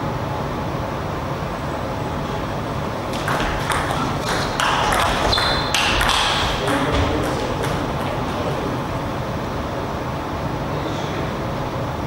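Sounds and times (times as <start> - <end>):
steady low hum: 0.0 - 12.0
table tennis ball clicking: 3.1 - 8.6.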